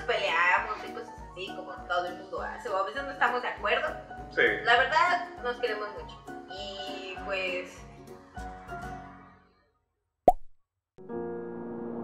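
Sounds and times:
background music: 0:00.0 - 0:09.7.

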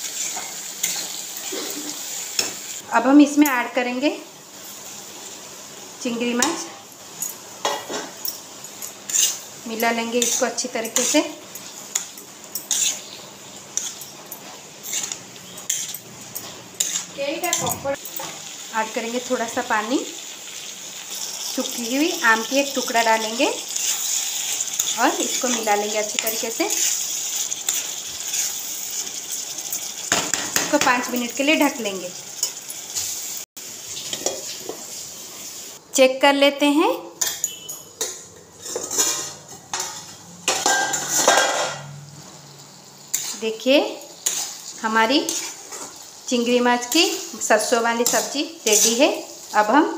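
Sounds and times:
spatula scraping a pan: 0:00.0 - 0:02.6, 0:09.0 - 0:09.5, 0:10.1 - 0:17.6, 0:21.1 - 0:29.4, 0:37.2 - 0:41.8, 0:43.0 - 0:43.4, 0:44.2 - 0:46.2, 0:48.0 - 0:49.5
metal lid clanking and scraping: 0:10.2 - 0:13.2, 0:13.8 - 0:18.4, 0:37.2 - 0:42.0.

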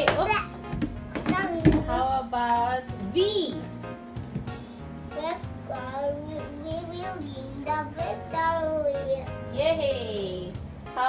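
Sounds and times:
light background music: 0:00.0 - 0:11.0
child reciting sing-song: 0:05.1 - 0:09.4.

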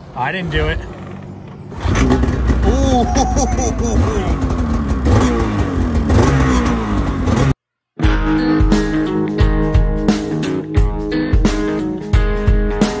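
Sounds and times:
snowmobile engine revving: 0:01.8 - 0:07.6.

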